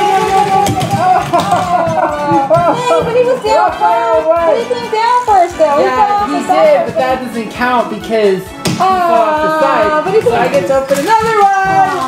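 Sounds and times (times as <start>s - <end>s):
toy cars rattling down plastic track: 0.0s - 3.2s, 10.2s - 12.0s.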